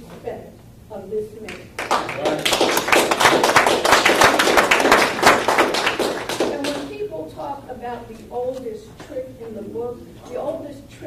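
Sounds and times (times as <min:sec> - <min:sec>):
audience clapping: 0:01.5 - 0:07.0.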